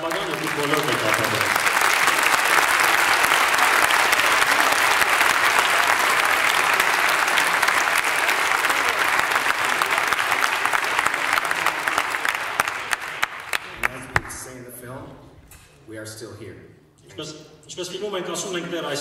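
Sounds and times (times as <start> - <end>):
audience applauding: 0.0 - 14.5.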